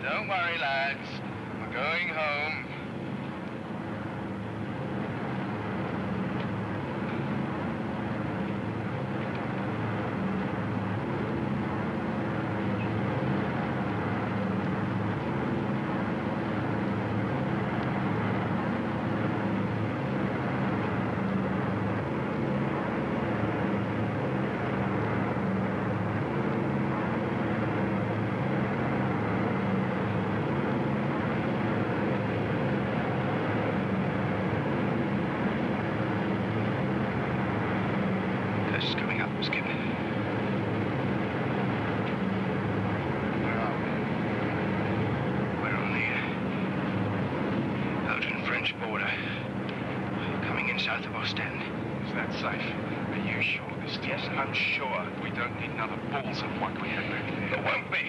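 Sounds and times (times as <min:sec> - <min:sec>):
piston engines droning: 0:00.0 - 0:58.0.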